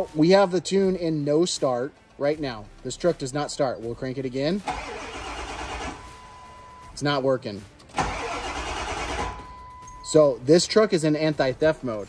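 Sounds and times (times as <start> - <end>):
diesel engine starter cranking: 4.6 - 6.2, 7.9 - 9.6.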